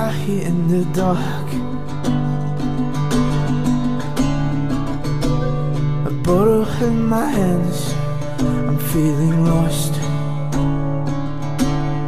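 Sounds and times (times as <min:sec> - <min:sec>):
person singing slow song: 0:00.0 - 0:02.4, 0:05.9 - 0:11.0
acoustic guitar picking: 0:00.0 - 0:12.0.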